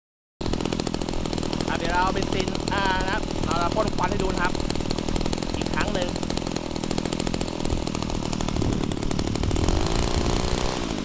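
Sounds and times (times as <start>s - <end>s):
small petrol engine running: 0.4s - 11.0s
man talking: 1.7s - 4.6s, 5.6s - 6.2s.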